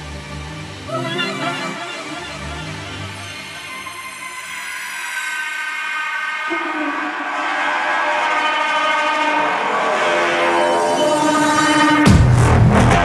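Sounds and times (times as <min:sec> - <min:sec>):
horn-like synth chords: 0:00.0 - 0:13.0.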